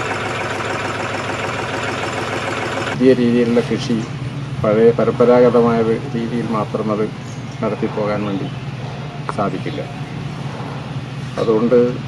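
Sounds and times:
diesel tractor engine idling: 0:00.0 - 0:12.0.

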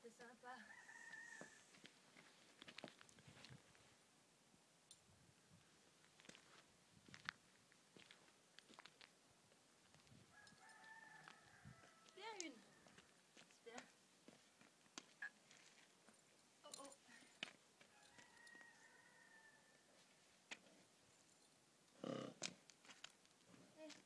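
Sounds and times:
faint rooster crowing: 0:00.6 - 0:01.9, 0:10.3 - 0:13.2, 0:17.8 - 0:20.3.

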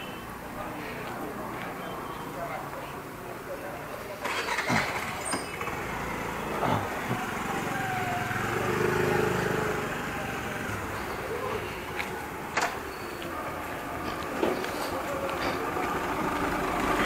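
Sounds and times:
street noise: 0:00.0 - 0:17.0
motor scooter passing by: 0:04.2 - 0:17.0.

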